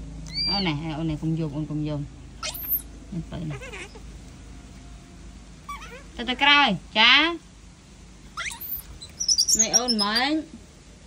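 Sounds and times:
monkey squeal: 0.3s - 0.7s, 2.4s - 2.9s, 3.5s - 4.0s, 5.7s - 6.1s, 8.4s - 10.4s
baby monkeys squeaking: 0.3s - 0.8s, 2.4s - 4.0s, 5.7s - 6.2s, 8.3s - 10.4s.

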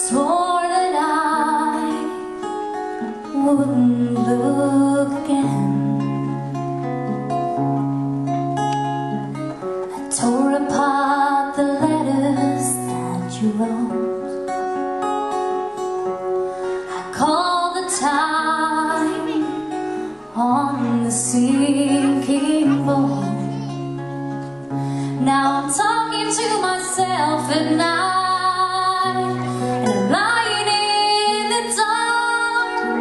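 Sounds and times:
woman singing: 0.0s - 6.5s, 9.9s - 14.5s, 16.8s - 23.8s, 25.1s - 33.0s
acoustic guitar chords: 0.0s - 33.0s.

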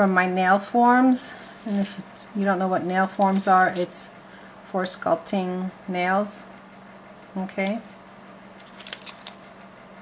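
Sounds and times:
steady low hum: 0.0s - 10.0s
backing paper crinkling and peeling: 8.6s - 9.5s.

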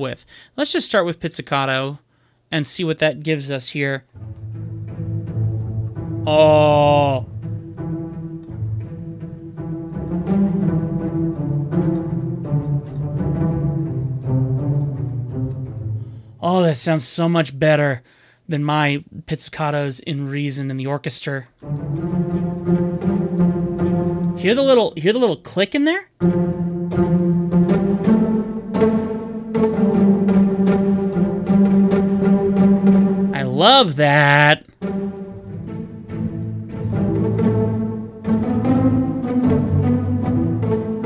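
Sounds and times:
low plucked string notes: 4.1s - 16.4s, 21.6s - 24.9s, 26.2s - 33.6s, 34.8s - 41.0s.

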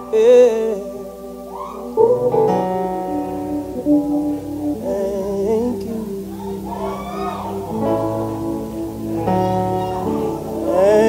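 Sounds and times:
singing: 0.0s - 11.0s.

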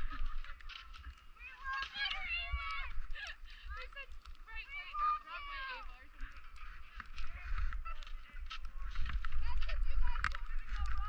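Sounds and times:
wind on microphone: 0.0s - 4.2s, 5.8s - 11.0s
skis scraping over snow: 3.7s - 11.0s.

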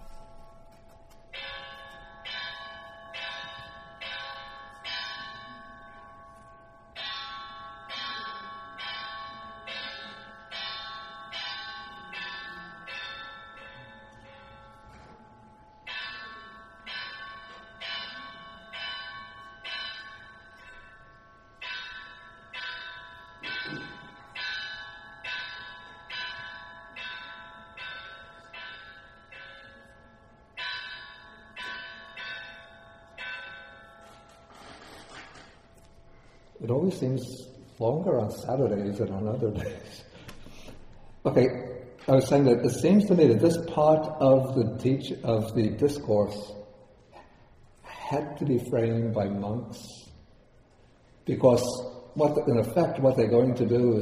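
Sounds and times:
bells ringing: 0.0s - 54.0s.

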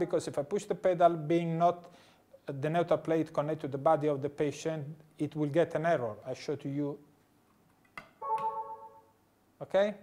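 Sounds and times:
chord-like alarm tone: 8.2s - 9.1s.

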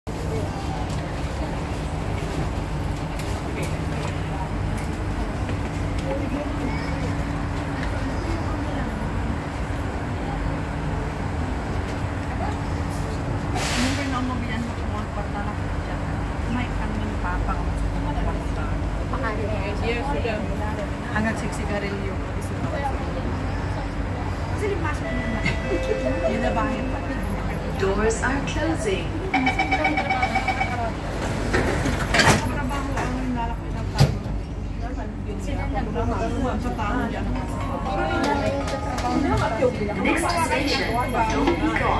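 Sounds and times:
low train car hum: 0.1s - 41.9s
passengers chattering: 0.1s - 41.9s
voices: 0.2s - 41.9s
electronic door warning tones: 29.4s - 30.8s.

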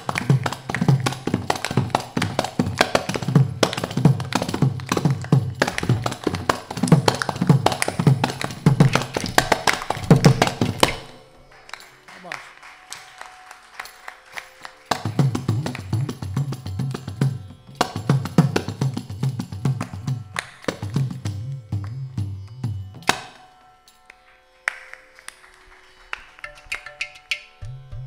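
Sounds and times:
hand drums playing fast rhythm: 0.0s - 11.1s, 14.9s - 22.4s.

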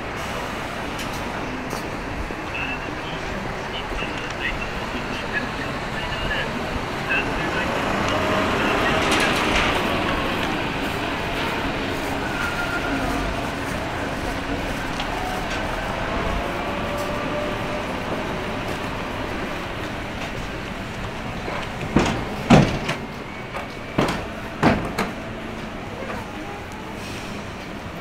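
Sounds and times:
traffic noise: 0.0s - 28.0s
voices of passers-by: 0.0s - 28.0s.

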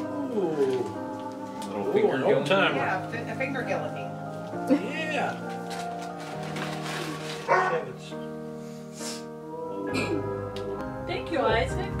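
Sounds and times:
background music with held notes: 0.0s - 12.0s
dog barking: 7.5s - 7.9s.

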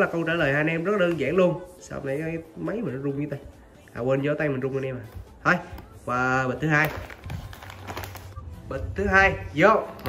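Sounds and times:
plastic snack bag crinkling: 6.6s - 8.4s.

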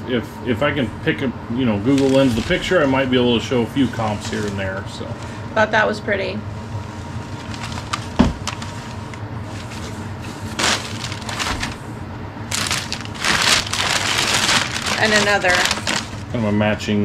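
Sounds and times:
packing paper rustling: 1.8s - 5.4s, 7.0s - 11.9s, 12.5s - 16.4s.

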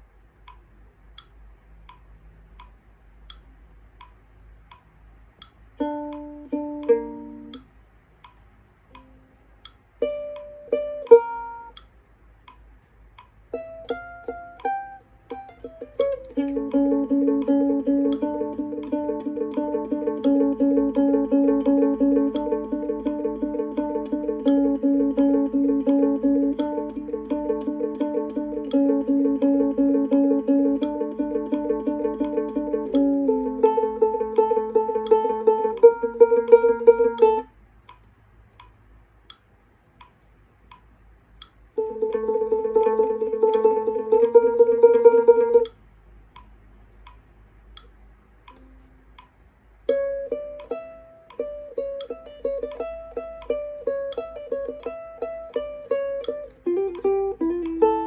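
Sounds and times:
ukulele played fingerstyle: 5.8s - 7.7s, 8.9s - 9.4s, 10.0s - 11.9s, 13.3s - 37.5s, 41.8s - 45.8s, 48.5s - 58.0s.

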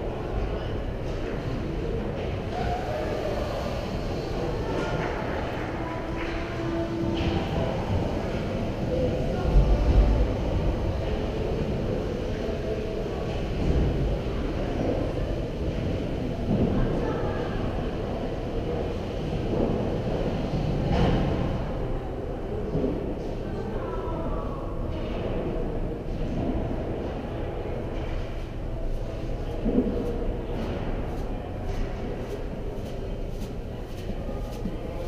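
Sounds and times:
faint distant voices: 0.0s - 35.0s.

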